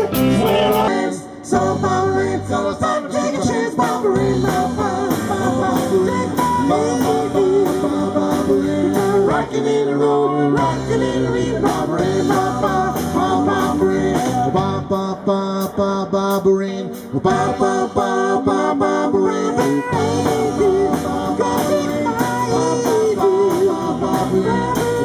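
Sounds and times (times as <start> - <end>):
drum kit beat: 0.0 - 1.2, 3.8 - 9.6, 10.6 - 14.7, 19.6 - 25.0
electric bass: 0.0 - 2.9, 3.7 - 16.2, 19.6 - 25.0
electric guitars: 0.0 - 9.8.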